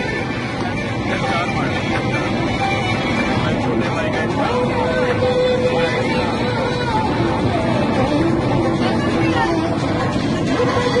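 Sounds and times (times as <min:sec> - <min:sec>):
airliner cabin drone: 0:00.0 - 0:11.0
music: 0:00.0 - 0:11.0
voices: 0:00.0 - 0:11.0.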